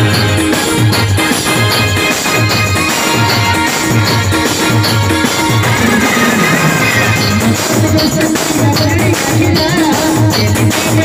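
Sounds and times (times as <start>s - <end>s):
electronic keyboard melody: 0.0s - 11.0s
steady deep beat: 0.0s - 11.0s.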